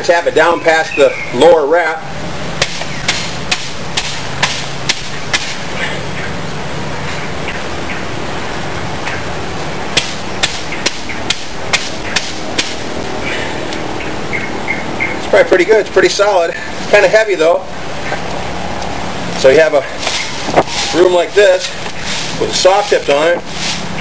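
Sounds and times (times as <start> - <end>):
stick knocking into broom bristles: 2.6 - 5.6, 10.0 - 12.8.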